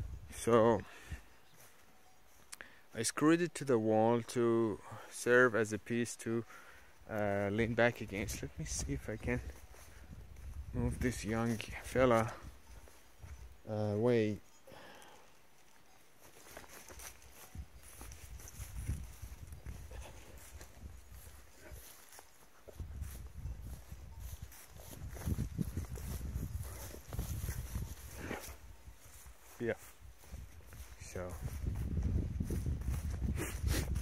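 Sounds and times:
footsteps rustling through grass: 0.0 - 2.5, 6.8 - 14.0, 15.3 - 34.0.

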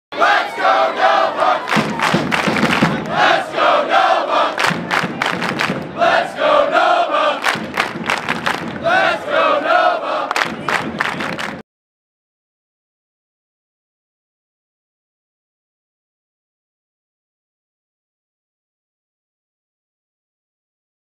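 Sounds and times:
crowd chanting in unison: 0.1 - 11.6.

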